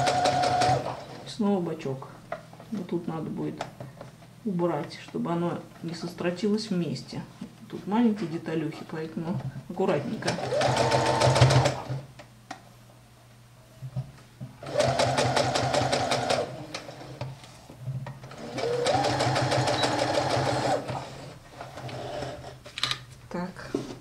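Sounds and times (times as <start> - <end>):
sewing machine motor whirring: 0.0 - 1.2, 10.2 - 12.0, 14.6 - 17.2, 18.2 - 22.6.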